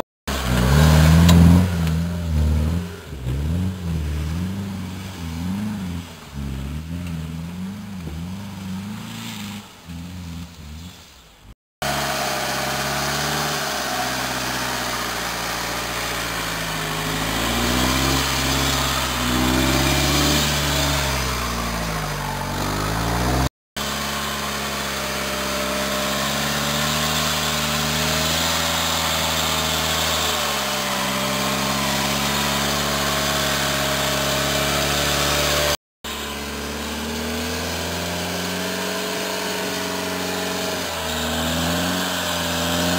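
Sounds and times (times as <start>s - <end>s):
vehicle engine running: 0.0s - 42.9s.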